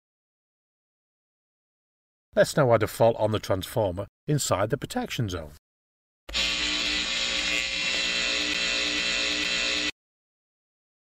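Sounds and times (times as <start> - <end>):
electric buzzing with hiss: 6.3 - 10.0.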